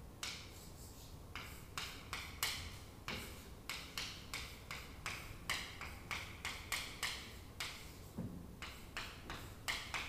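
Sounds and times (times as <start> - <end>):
chalk tapping and scratching on chalkboard: 0.2 - 10.0.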